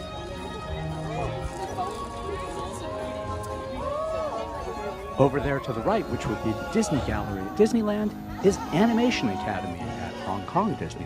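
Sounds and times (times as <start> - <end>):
background music: 0.0 - 11.0
crowd chattering: 0.0 - 11.0.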